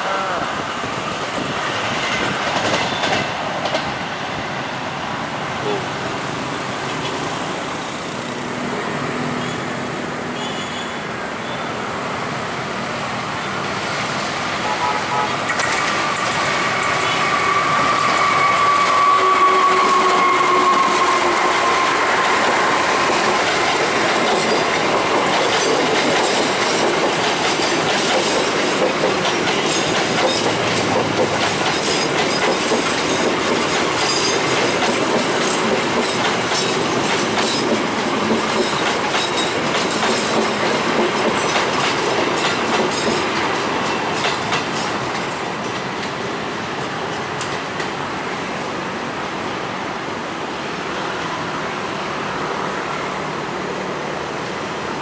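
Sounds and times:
passenger train passing: 0.0 - 55.0
train wheels clattering on rail joints: 1.2 - 4.0, 15.4 - 48.1.

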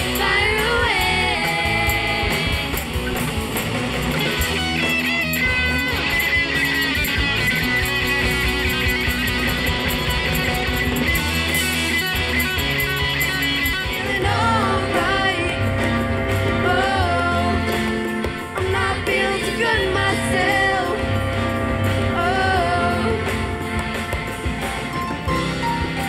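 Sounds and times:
electric guitars: 0.0 - 26.0
live rock band playing: 0.0 - 26.0.

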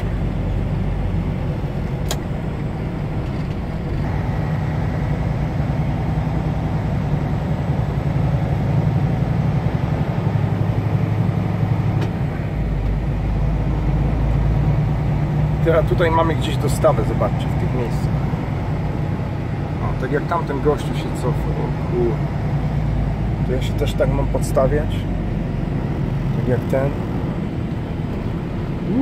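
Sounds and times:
diesel truck engine droning: 0.0 - 29.0.

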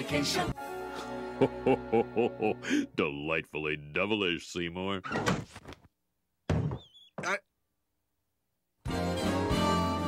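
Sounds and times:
sudden thunk: 6.5 - 7.4.

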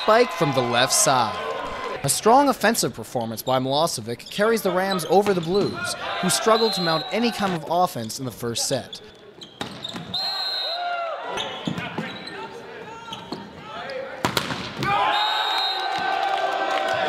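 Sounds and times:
crowd shouting and cheering: 0.0 - 2.7, 4.5 - 7.8, 10.1 - 17.0
sneakers squeaking on hardwood: 4.2 - 5.9, 8.9 - 10.4, 11.4 - 13.7
volleyball strike: 14.2 - 15.0.

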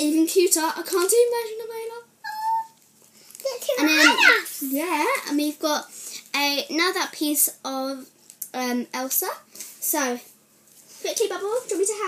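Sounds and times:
high-pitched vocal squeak: 2.2 - 2.8, 3.8 - 4.4.

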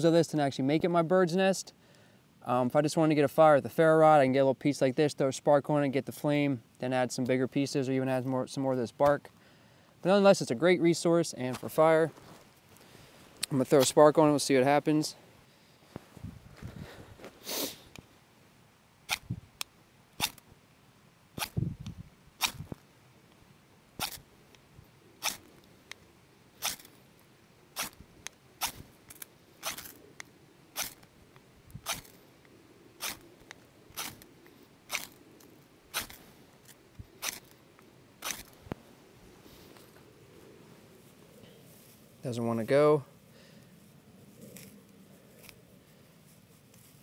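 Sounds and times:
knife scraping ferrocerium rod: 24.0 - 24.2, 26.6 - 26.9, 27.8 - 28.0, 28.6 - 30.0, 30.8 - 31.0, 31.8 - 32.2, 33.0 - 33.3, 34.9 - 35.2, 35.9 - 37.6.

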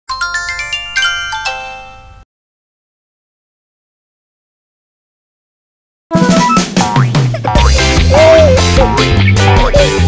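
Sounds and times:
bell-like chime jingle: 0.1 - 2.2.

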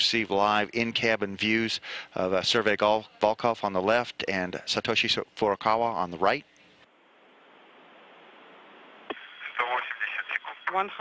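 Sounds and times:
radio hiss: 0.0 - 6.9, 7.7 - 11.0
radio click: 9.0 - 9.6
man's voice over radio: 9.4 - 11.0.

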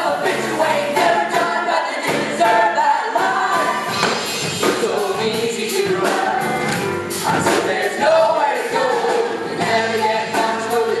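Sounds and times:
ensemble of voices singing: 0.0 - 11.0
musical accompaniment with beat: 0.0 - 11.0.

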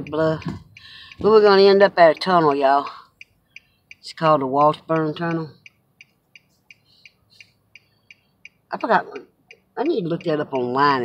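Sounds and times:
turn signal indicator ticking: 0.0 - 11.0.

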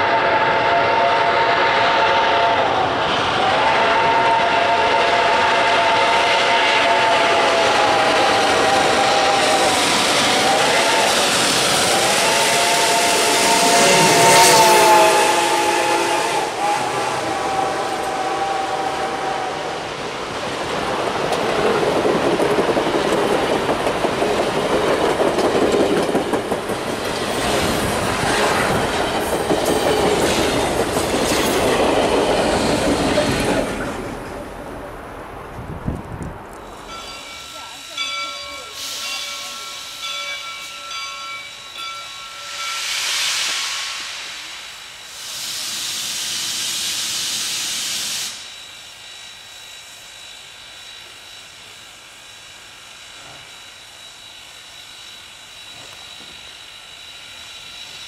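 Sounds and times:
steam locomotive whistle blasts: 0.0 - 20.0, 36.6 - 51.6
train coaches clickety-clack: 0.0 - 52.5, 53.1 - 58.0
steam locomotive passing: 0.0 - 58.0.

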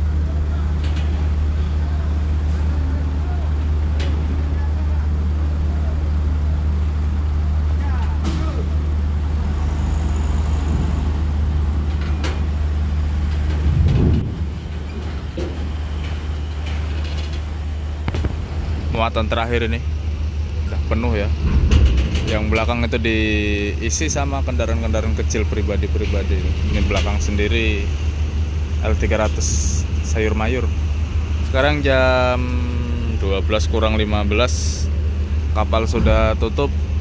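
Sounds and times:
bus diesel engine humming: 0.0 - 37.0
clanks on steel ramp: 11.8 - 18.9, 21.2 - 23.3, 35.9 - 37.0.

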